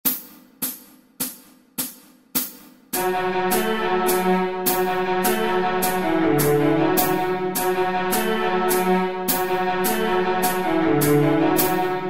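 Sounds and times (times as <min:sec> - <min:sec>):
hi-hat strokes: 0:00.0 - 0:12.0.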